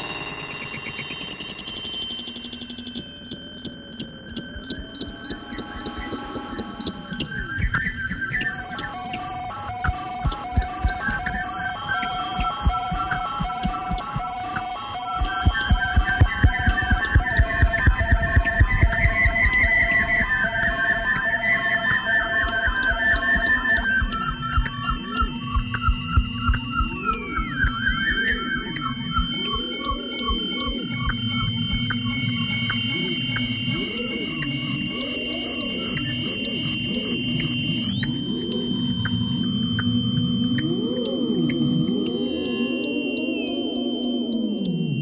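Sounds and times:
feedback howl electronic music: 0.0 - 45.0.

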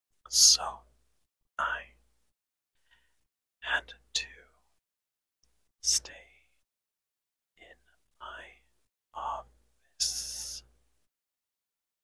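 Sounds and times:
person whispering: 0.3 - 0.8, 1.6 - 2.0, 3.6 - 4.6, 5.8 - 6.6, 7.6 - 10.7.

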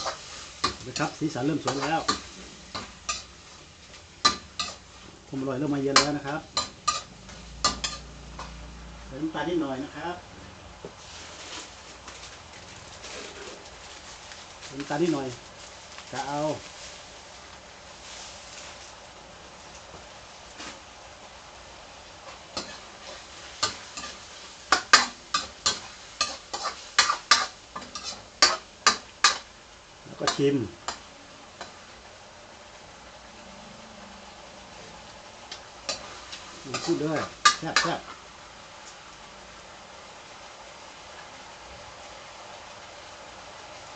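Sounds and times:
food sizzling in a wok: 0.0 - 43.9
sauce simmering hiss: 0.0 - 43.9.

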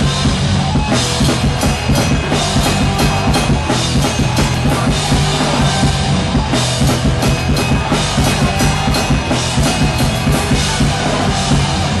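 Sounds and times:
bass guitar: 0.0 - 12.0
drum kit: 0.0 - 12.0
electric guitar: 0.0 - 12.0
punk band playing live: 0.0 - 12.0.

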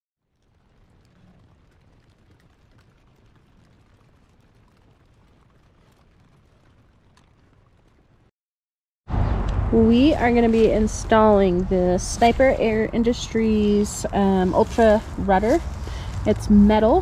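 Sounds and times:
faint low rumble: 0.2 - 8.3, 9.1 - 17.0
faint ticks: 0.4 - 8.1.

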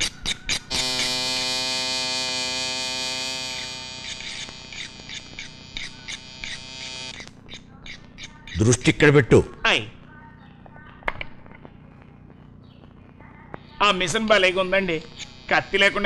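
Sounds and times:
buzzing drone: 0.0 - 7.3, 14.3 - 16.0
sharp clicks: 3.2 - 8.6.

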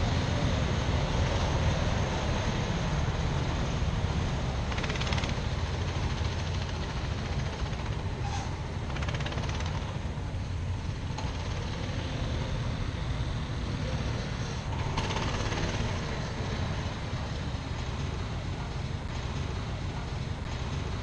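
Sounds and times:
distant kart engine: 0.0 - 21.0.

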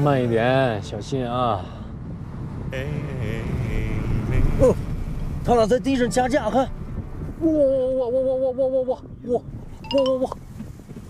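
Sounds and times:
man exclaiming in excitement: 7.4 - 10.4.

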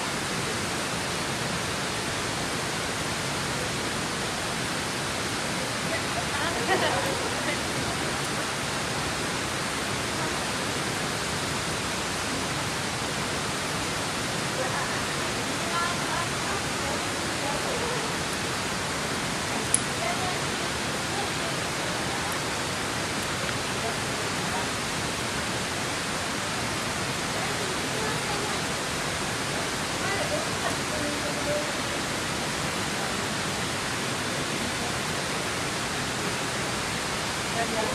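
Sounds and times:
river water rushing: 0.0 - 37.9.

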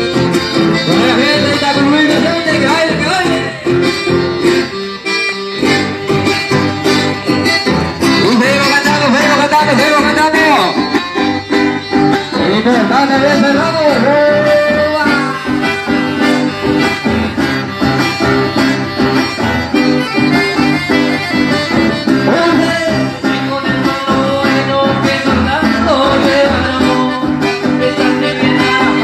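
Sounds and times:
acoustic guitar: 0.0 - 29.0
button accordion: 0.0 - 29.0
man singing: 0.8 - 3.8, 8.1 - 10.8, 12.3 - 15.7, 22.0 - 29.0.

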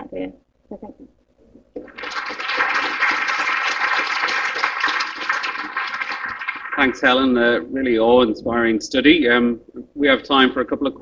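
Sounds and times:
audience clapping: 1.8 - 7.3.

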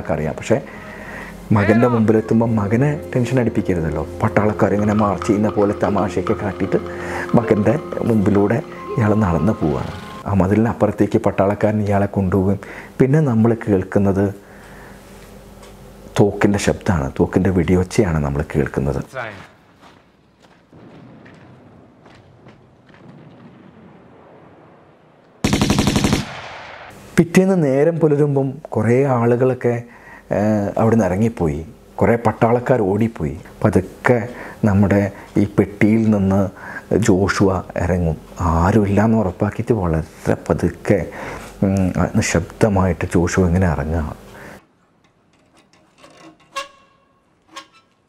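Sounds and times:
man's voice: 1.4 - 11.5, 18.0 - 19.5
submachine gun burst: 25.4 - 26.9.

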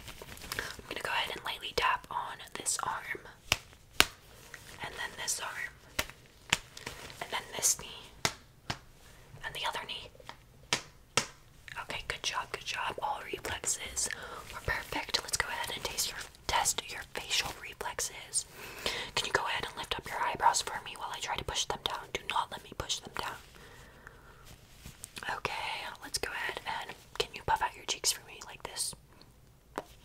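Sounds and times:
close-up soft whispering: 0.5 - 3.4, 4.5 - 5.9, 7.0 - 8.2, 9.4 - 10.4, 11.7 - 30.0.

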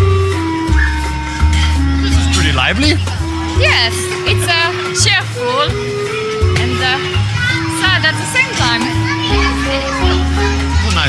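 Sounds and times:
carousel music: 0.0 - 11.0.

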